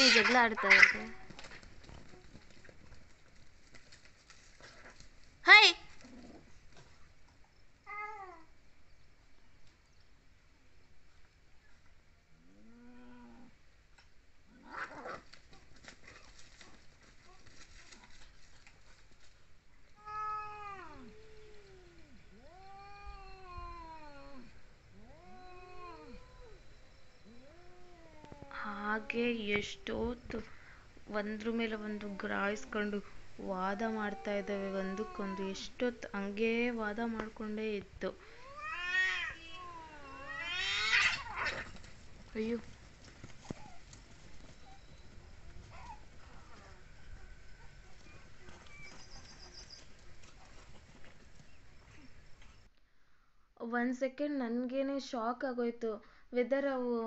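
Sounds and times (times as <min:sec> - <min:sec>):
cats yowling: 0:00.0 - 0:01.3, 0:20.0 - 0:26.6, 0:27.2 - 0:29.2, 0:38.4 - 0:41.7.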